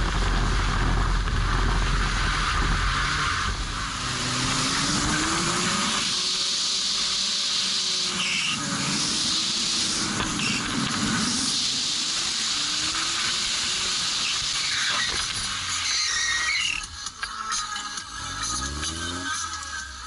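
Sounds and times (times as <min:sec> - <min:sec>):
car engine revving: 0:00.0 - 0:20.0
wind: 0:00.0 - 0:20.0
hiss of wet tyres: 0:00.2 - 0:20.0
tyres squealing: 0:14.2 - 0:16.9.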